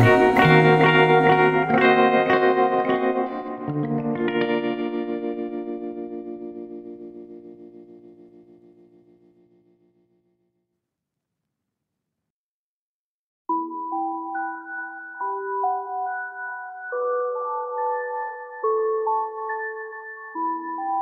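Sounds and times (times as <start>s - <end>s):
electric guitar chords with echo: 0.0s - 10.2s, 13.6s - 21.0s.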